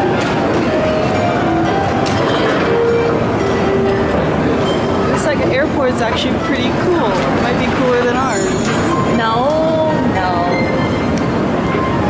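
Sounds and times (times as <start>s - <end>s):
moving walkway rumbling: 0.0s - 12.0s
synthesized ambient music: 0.0s - 12.0s.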